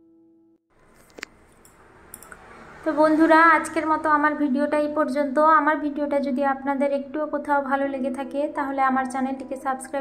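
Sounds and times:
woman talking: 2.8s - 10.0s.

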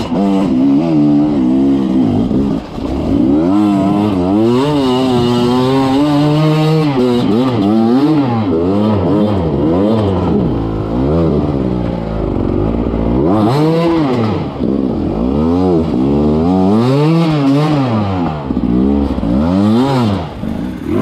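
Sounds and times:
two-stroke motorcycle engine revving: 0.0s - 21.0s.

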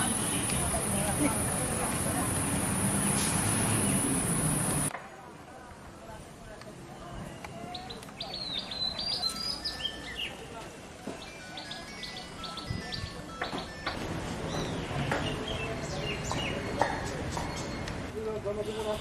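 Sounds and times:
small birds chirping: 0.0s - 1.4s, 2.4s - 4.9s, 7.4s - 10.4s, 14.4s - 18.0s
outdoor background noise: 0.0s - 19.0s.

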